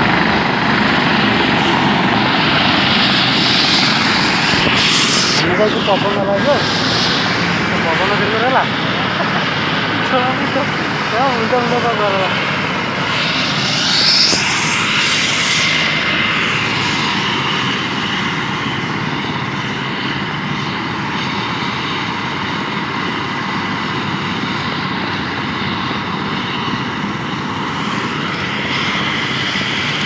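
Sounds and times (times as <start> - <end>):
helicopter rotor noise: 0.0 - 30.0
helicopter turbine whine: 0.0 - 30.0.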